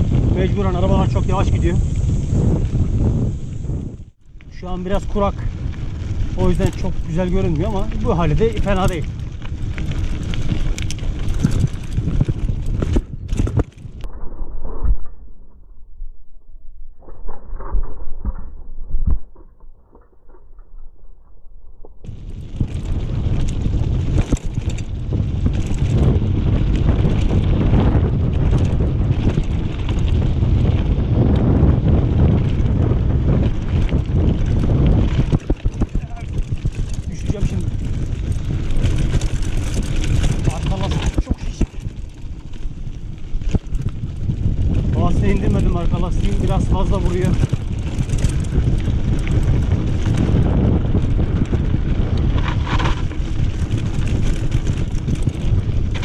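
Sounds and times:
bike tyres crunching over gravel: 0:00.0 - 0:14.1, 0:21.9 - 0:56.0
bike rattling over bumps: 0:00.0 - 0:15.9, 0:16.9 - 0:56.0
wind rumbling on microphone: 0:00.0 - 0:56.0.

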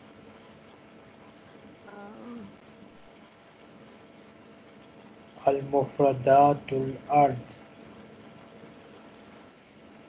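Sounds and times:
person humming: 0:01.9 - 0:02.5
video call line hiss: 0:04.7 - 0:09.8.

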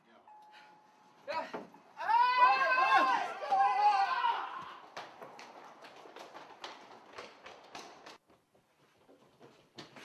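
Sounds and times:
person shouting: 0:01.3 - 0:04.8
people running on concrete: 0:03.0 - 0:10.0.

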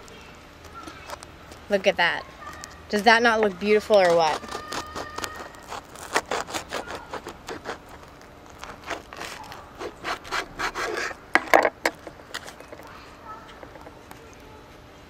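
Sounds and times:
knife sawing through crusty bread: 0:03.8 - 0:11.2.

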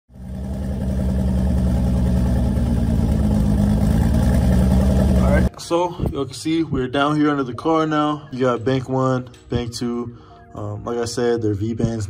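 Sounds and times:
engine idling: 0:00.1 - 0:05.5.

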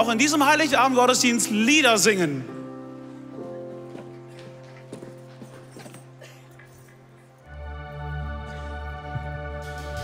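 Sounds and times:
crowd knocking and shuffling: 0:03.4 - 0:07.5.

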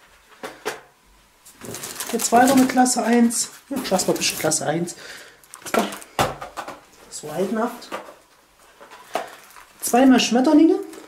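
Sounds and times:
cardboard packets handled: 0:01.5 - 0:06.4, 0:07.2 - 0:11.0.

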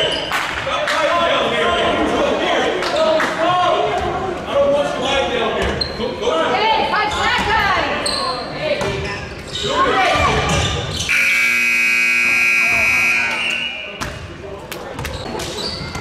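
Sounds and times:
scoreboard buzzer horn blast: 0:11.1 - 0:13.8.

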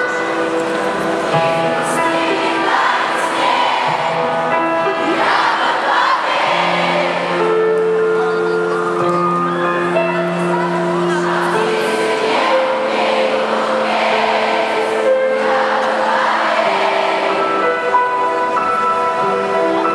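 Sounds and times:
crowd singing along: 0:00.0 - 0:08.1, 0:10.0 - 0:19.9.

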